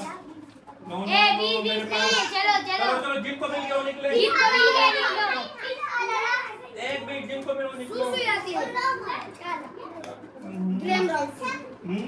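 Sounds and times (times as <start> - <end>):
children talking and calling out: 0.0 - 7.2, 7.8 - 12.0.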